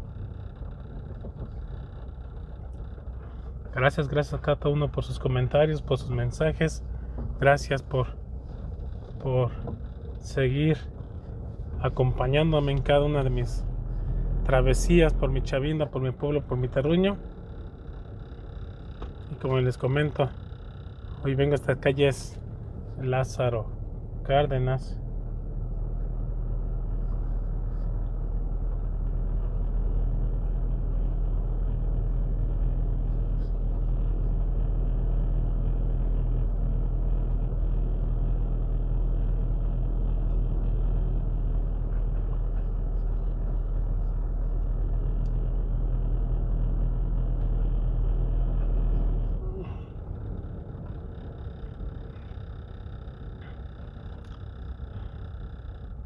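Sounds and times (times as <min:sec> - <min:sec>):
car engine: 0:00.0 - 0:56.0
road rumble inside car: 0:00.0 - 0:56.0.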